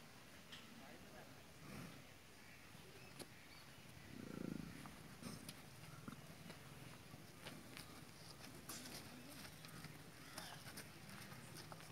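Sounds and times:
bull grunting: 4.1 - 5.5.

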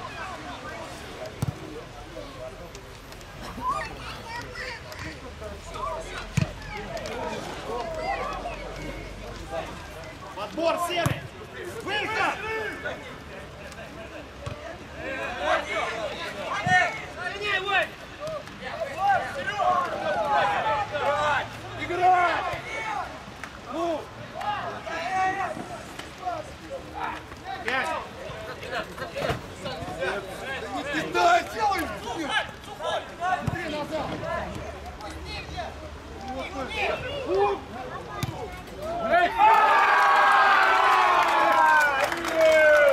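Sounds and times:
ball being kicked: 1.4 - 1.6
players and spectators shouting: 3.5 - 42.9.

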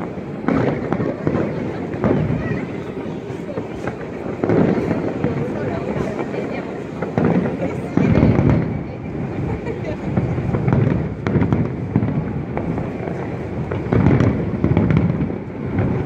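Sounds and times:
fireworks booming: 0.0 - 16.0
fireworks crackling: 0.0 - 16.0.

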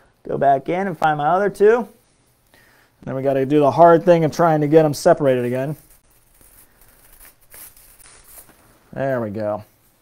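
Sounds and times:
small crackles: 5.6 - 8.9.

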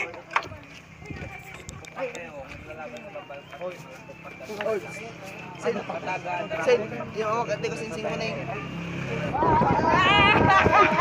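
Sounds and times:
loud drawn-out shout: 8.6 - 11.0.

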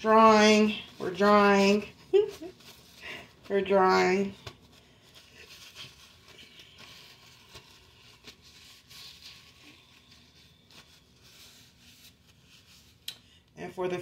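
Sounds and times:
paper napkins rustling: 0.0 - 13.4.

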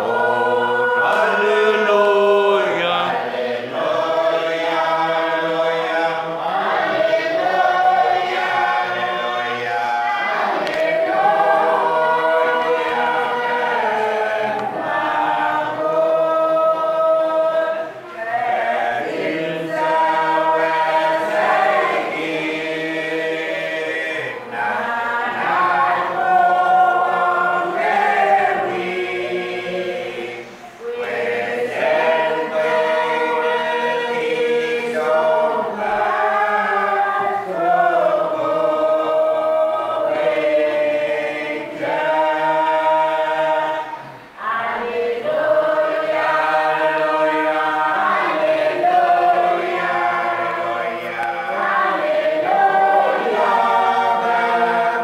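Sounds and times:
congregation singing a hymn: 0.0 - 55.0.

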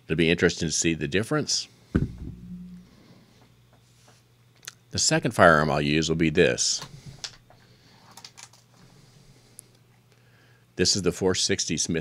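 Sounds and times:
low steady hum: 2.0 - 3.8.

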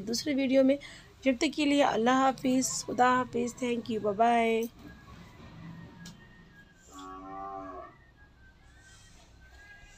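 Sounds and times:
faint background noise: 0.0 - 9.9.

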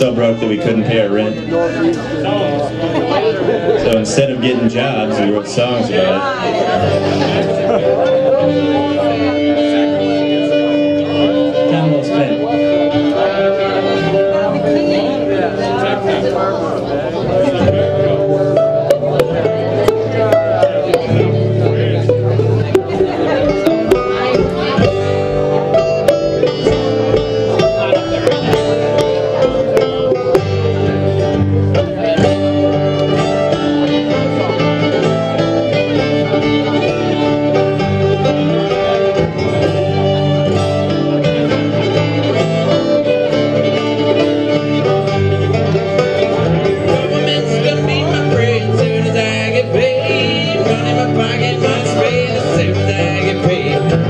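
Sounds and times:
fiddle with vibrato: 0.0 - 54.0
picked banjo: 0.0 - 54.0
strummed acoustic guitar: 0.0 - 54.0
upright bass: 0.0 - 54.0.

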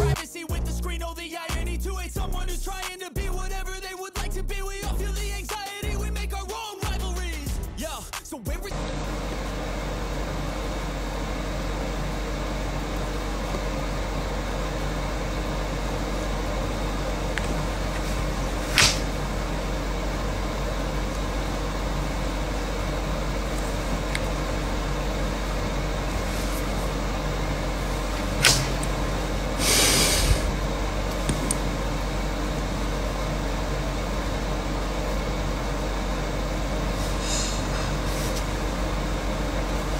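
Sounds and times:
steady droning noise: 8.7 - 39.9
sharp click: 18.7 - 19.1, 28.3 - 28.9
short burst of hiss: 29.6 - 30.5.

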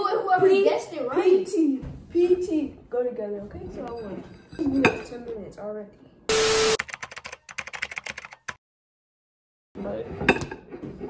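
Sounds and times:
keyboard typing clicks: 6.7 - 8.6.

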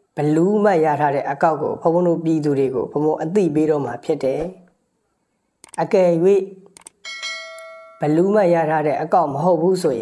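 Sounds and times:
man speaking: 0.2 - 4.7, 5.8 - 6.6, 8.0 - 10.0
bell-like ding: 7.0 - 8.5.

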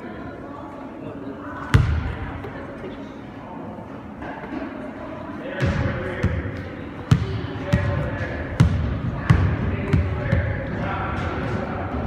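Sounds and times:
players chattering: 0.0 - 12.0
soccer balls thudding in a gym: 1.6 - 2.5, 5.5 - 12.0.

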